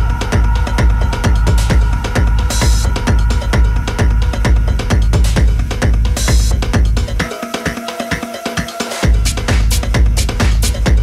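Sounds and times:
sustained bass: 0.0s - 7.3s, 9.0s - 11.0s
hi-hat strikes: 0.0s - 11.0s
techno kick drum: 0.0s - 11.0s.

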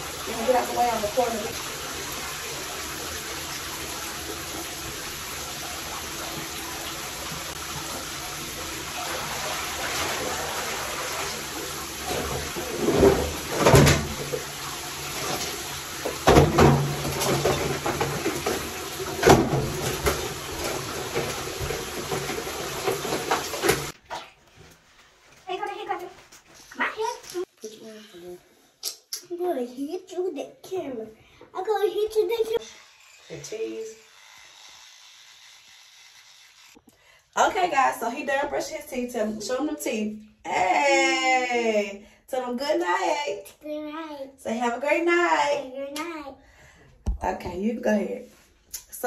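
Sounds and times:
water pouring into bathtub: 0.0s - 24.5s.

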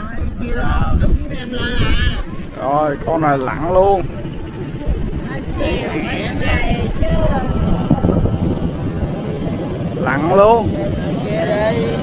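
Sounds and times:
constant low rumble: 0.0s - 12.0s
people talking: 0.0s - 12.0s.

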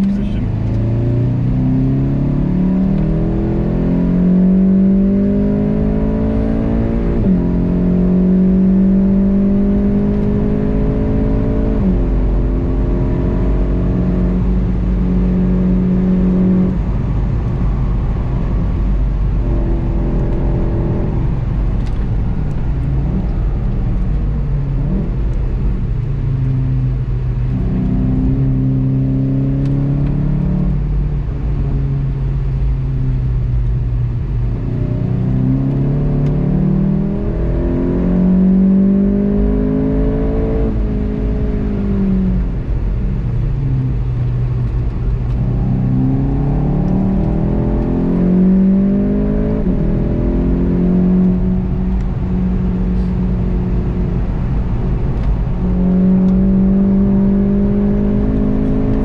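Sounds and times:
car engine accelerating: 0.0s - 59.0s
road and tyre rumble: 0.0s - 59.0s.

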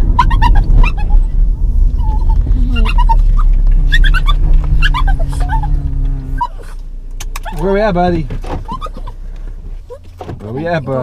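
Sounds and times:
dog whimpering: 0.0s - 6.8s, 8.6s - 9.2s
car road rumble: 0.0s - 11.0s.

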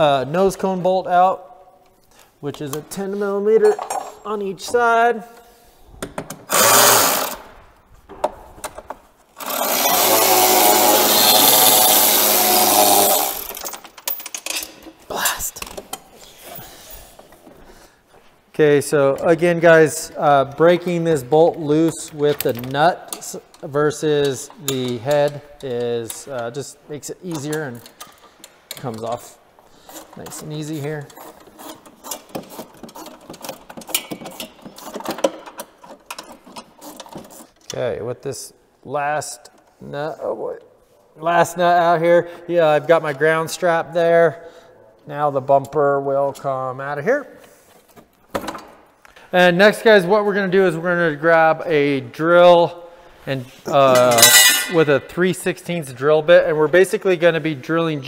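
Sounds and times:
clicks of tools and hardware: 3.6s - 4.3s, 13.5s - 15.0s, 21.8s - 26.6s, 27.3s - 29.3s, 29.9s - 37.8s, 53.9s - 54.8s
power driver spinning: 6.5s - 7.4s
wrench clicking: 31.0s - 37.4s.

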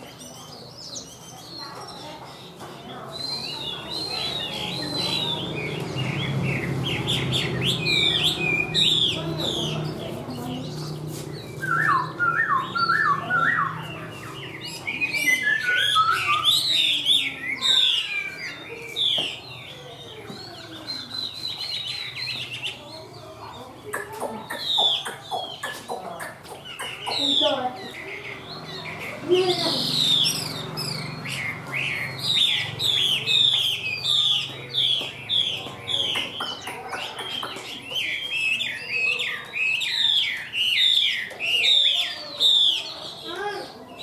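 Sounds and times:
bird singing whistled song: 11.4s - 22.8s, 26.7s - 43.0s.

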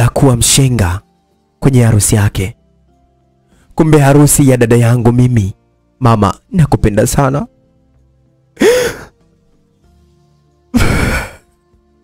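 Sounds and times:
faint background music: 0.0s - 12.0s
person sighing heavily: 8.6s - 9.2s, 10.7s - 11.4s.

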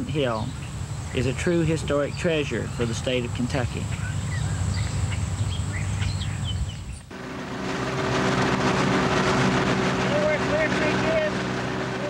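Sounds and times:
birds chirping: 0.0s - 12.0s
low steady rumble: 0.0s - 12.0s
boat wake hissing: 7.1s - 12.0s
outboard motor running: 7.1s - 12.0s.

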